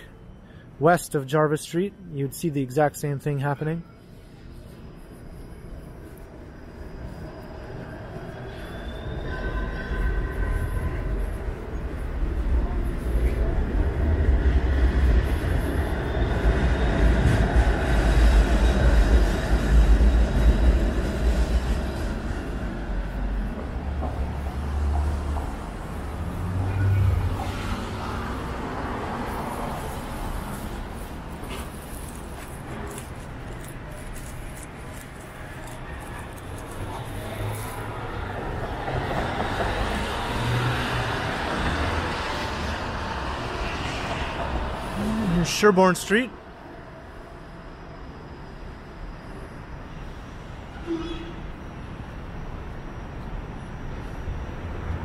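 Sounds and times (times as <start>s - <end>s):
faint high whine: 0.0s - 13.9s
streetcar rumbling on rails: 3.3s - 55.0s.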